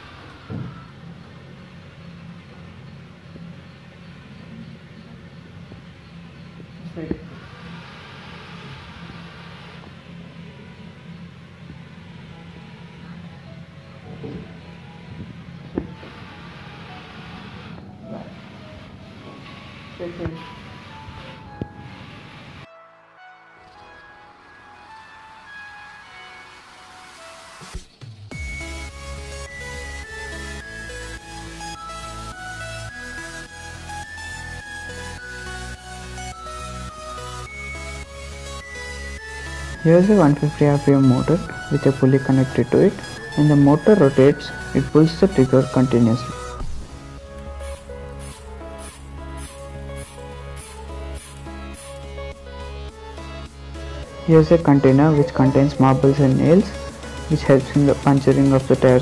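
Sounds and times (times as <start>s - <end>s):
electronic music: 15.8s - 59.0s.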